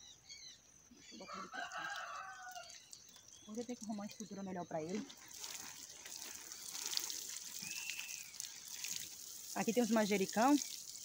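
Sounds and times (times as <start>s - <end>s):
water showering onto soil: 1.3s - 11.0s.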